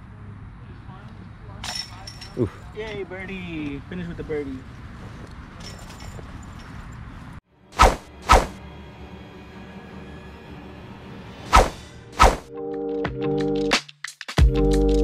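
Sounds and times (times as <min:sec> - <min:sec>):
low outdoor background: 0:00.0 - 0:13.7.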